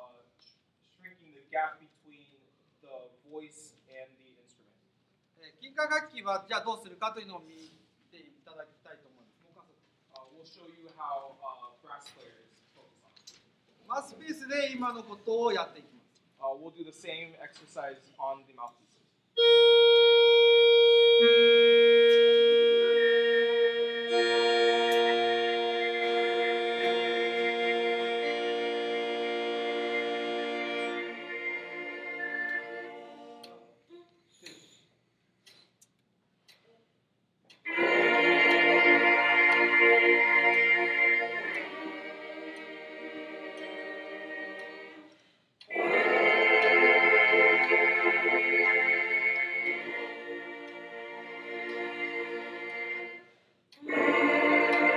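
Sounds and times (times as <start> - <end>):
brass mouthpieces buzzing chords: 19.4 - 33.4, 37.7 - 44.8, 45.7 - 53.2.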